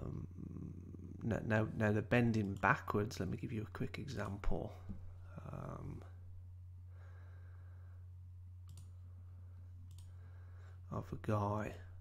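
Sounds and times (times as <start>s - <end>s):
low electrical hum: 0.0s - 12.0s
computer mouse clicks: 8.6s - 9.0s, 9.9s - 10.2s.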